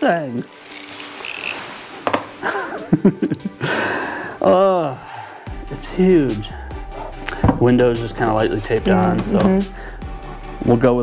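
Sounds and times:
plastic packaging rustling: 0.0s - 2.1s
person laughing: 2.4s - 3.9s.

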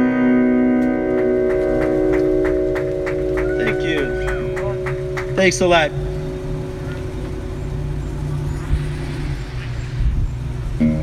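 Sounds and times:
amplified chord ringing: 0.0s - 11.0s.

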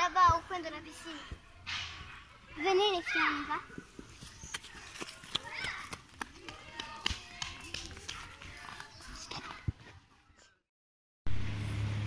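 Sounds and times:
faint children's voices: 0.0s - 10.6s
footsteps: 1.2s - 10.2s.

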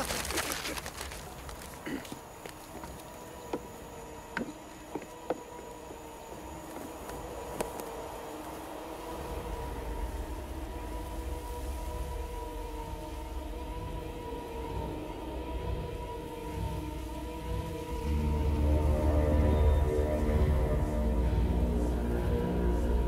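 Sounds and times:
sustained held notes: 5.1s - 23.0s
deep rumble: 7.3s - 23.0s.

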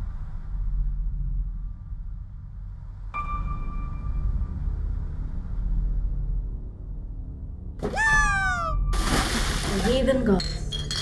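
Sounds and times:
deep low drone: 0.0s - 7.8s.

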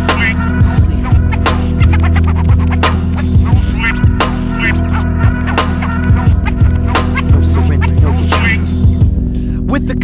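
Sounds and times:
steady bass line: 0.0s - 10.0s.

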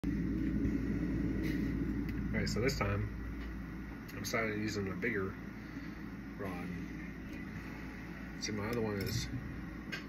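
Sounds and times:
low machinery rumble: 0.0s - 10.0s.

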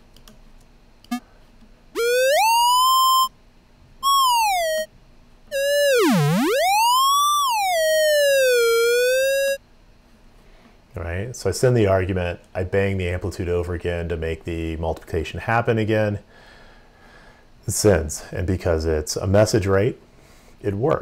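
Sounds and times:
gliding square-wave synth tones: 2.0s - 3.3s, 4.0s - 4.9s, 5.5s - 9.6s.

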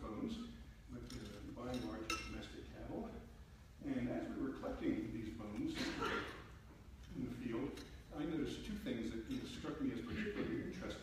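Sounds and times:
man talking: 0.0s - 6.4s, 7.0s - 11.0s.

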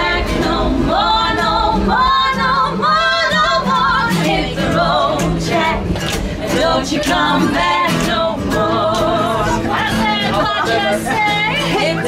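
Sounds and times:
acoustic guitar accompaniment: 0.0s - 12.0s
women singing in harmony: 0.0s - 12.0s.

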